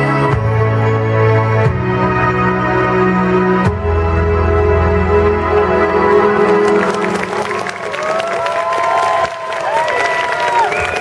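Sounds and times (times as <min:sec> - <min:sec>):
background music held notes: 0:00.0 - 0:08.2
audience applause and cheering: 0:05.8 - 0:11.0
long whoops: 0:07.5 - 0:11.0.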